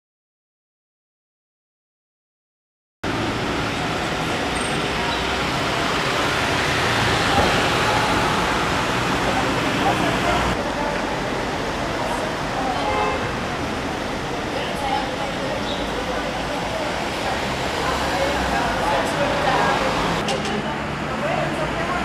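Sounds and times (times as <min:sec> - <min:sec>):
indistinct voices: 0:03.1 - 0:22.0.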